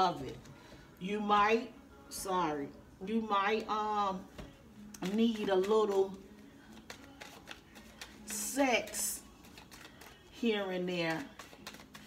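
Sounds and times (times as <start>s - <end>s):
cards being shuffled: 5.0s - 10.3s, 11.1s - 12.0s.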